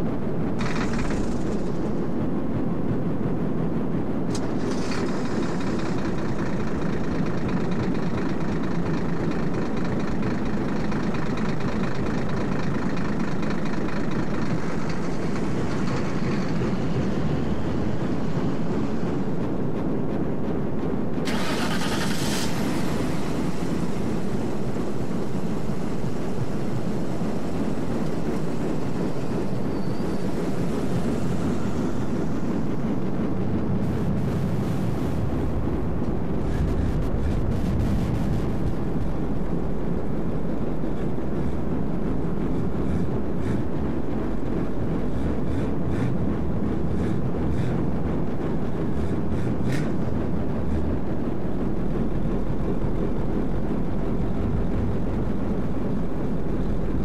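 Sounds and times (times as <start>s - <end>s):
loud low rumbling noise: 0.0s - 57.0s.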